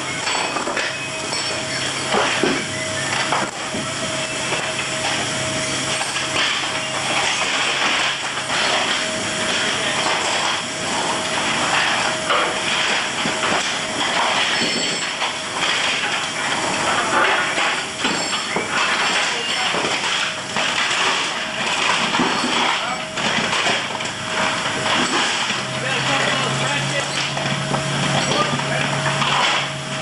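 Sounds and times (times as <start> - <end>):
loud machinery noise: 0.0 - 30.0
metal chains clanking: 0.2 - 2.2, 14.2 - 15.2, 17.0 - 19.7.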